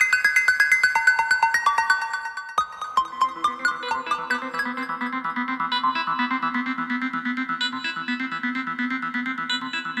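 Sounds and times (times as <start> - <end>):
synthesizer sequenced notes: 0.0 - 10.0.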